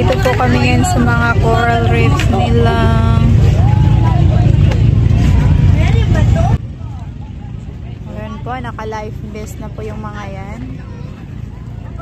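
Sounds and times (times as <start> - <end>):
boat engine droning: 0.0 - 12.0
faint voices: 0.0 - 12.0.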